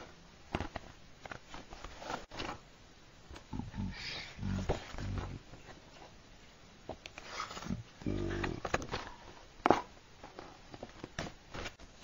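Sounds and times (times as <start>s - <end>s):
low grunting voice: 3.5s - 5.4s, 7.7s - 8.7s.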